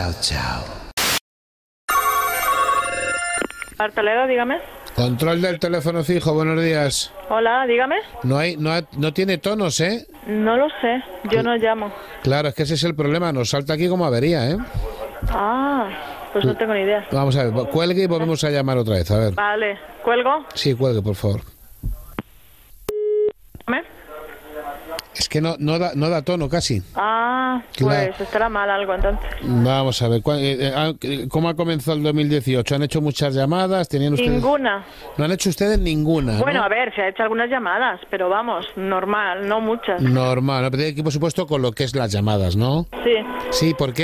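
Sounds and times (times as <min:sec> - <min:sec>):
telephone ringing: 0:01.9 - 0:03.9.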